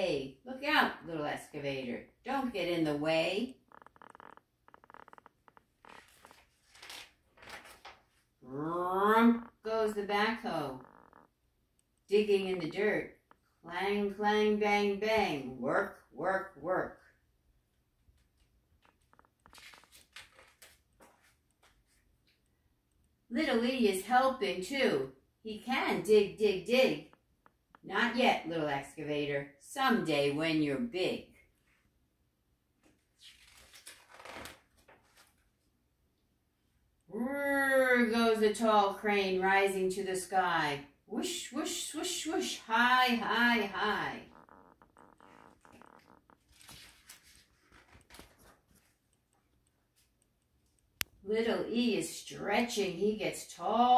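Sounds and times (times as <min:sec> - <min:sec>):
book pages rustling: 0:05.6 - 0:08.3, 0:18.2 - 0:22.4, 0:32.8 - 0:35.7, 0:45.5 - 0:50.2.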